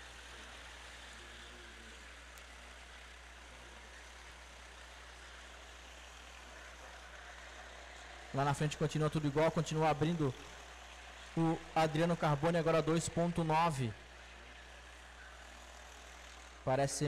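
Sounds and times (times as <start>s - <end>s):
racing kart engines: 0.0s - 17.0s.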